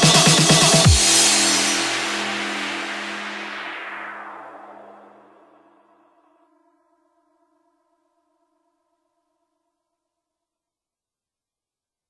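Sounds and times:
electronic dance beat: 0:00.0 - 0:03.5.

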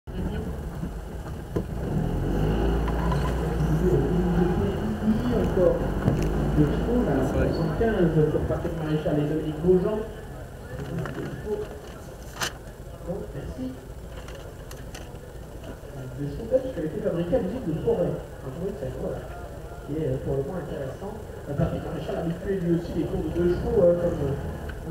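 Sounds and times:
small car engine running: 0:00.1 - 0:24.9
voices: 0:02.3 - 0:24.9.

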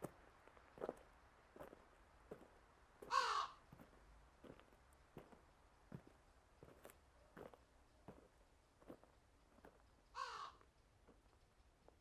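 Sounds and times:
crow cawing: 0:03.1 - 0:03.6, 0:10.2 - 0:10.6.

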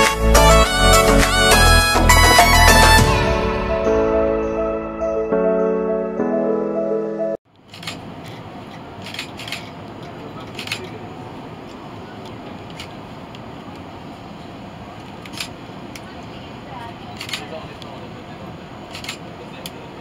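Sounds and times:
cooling fans humming: 0:07.5 - 0:20.0.

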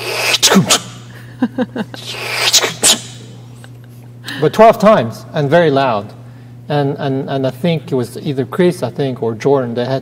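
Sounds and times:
short mouth clicks: 0:00.0 - 0:01.0, 0:02.1 - 0:03.3
man making hissing swooshes: 0:00.0 - 0:01.1, 0:02.0 - 0:03.4.

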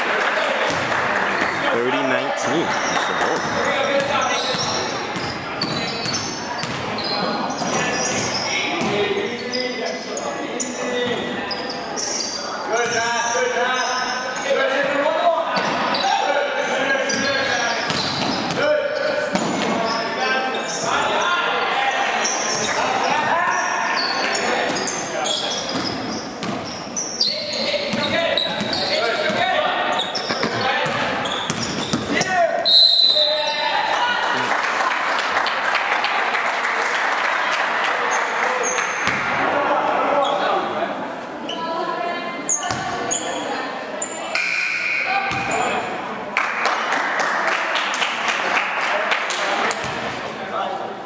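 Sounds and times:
players and spectators talking: 0:00.0 - 0:51.0
sneaker squeaks: 0:02.4 - 0:14.8, 0:15.6 - 0:33.8, 0:38.1 - 0:39.4, 0:40.2 - 0:40.6, 0:41.4 - 0:45.9
basketball bouncing on hardwood floor: 0:03.4 - 0:06.9.

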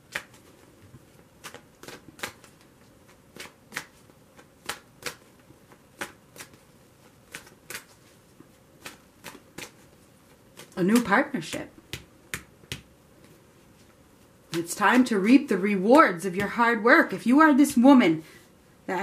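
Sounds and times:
cards being shuffled: 0:00.0 - 0:15.3.

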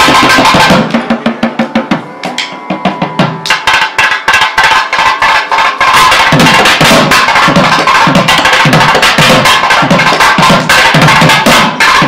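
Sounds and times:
group of drums played fast: 0:00.0 - 0:12.0.

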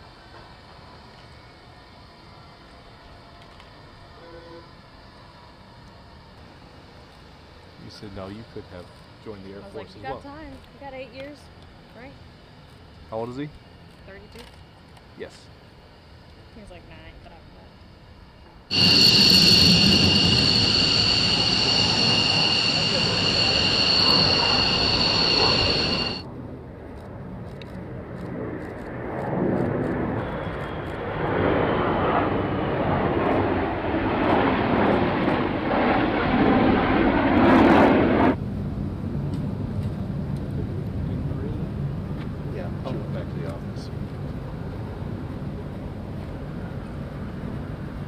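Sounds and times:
high-pitched jet whine: 0:18.5 - 0:26.4, 0:28.3 - 0:48.0
jet fighters flying past: 0:18.7 - 0:48.0.

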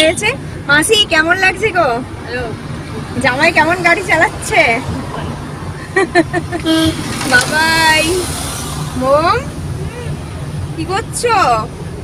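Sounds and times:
voices: 0:00.0 - 0:11.7
car engine and tyres rumbling: 0:00.0 - 0:12.0.

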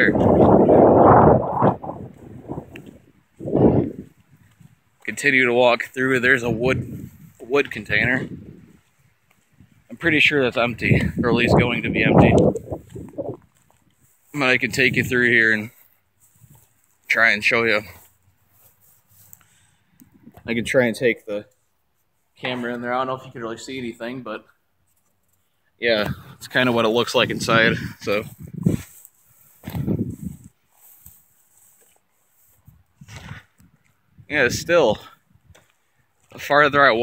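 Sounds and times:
wind gusts buffeting microphone: 0:00.0 - 0:04.9, 0:06.3 - 0:13.5, 0:26.1 - 0:29.0, 0:29.6 - 0:30.5, 0:32.6 - 0:35.6
faint soft scuffs: 0:15.5 - 0:20.6, 0:28.0 - 0:34.1.

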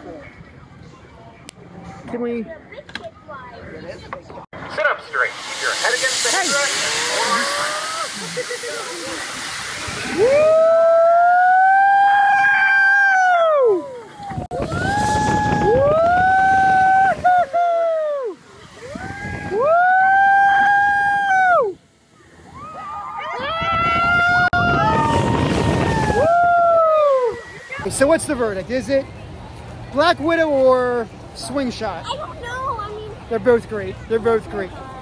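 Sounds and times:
riders screaming: 0:06.7 - 0:08.4, 0:09.9 - 0:21.8, 0:22.4 - 0:27.9
wind on microphone: 0:14.2 - 0:17.6, 0:18.6 - 0:21.3, 0:22.4 - 0:28.0.

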